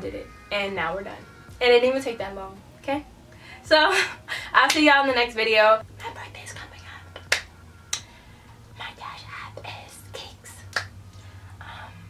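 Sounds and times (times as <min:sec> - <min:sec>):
breathy whispered vocal sounds: 0:08.0 - 0:12.0.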